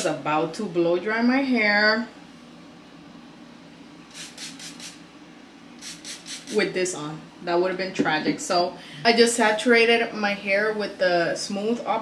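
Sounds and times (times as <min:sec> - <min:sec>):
spray bottle spritzing: 0:04.1 - 0:05.0, 0:05.8 - 0:06.6.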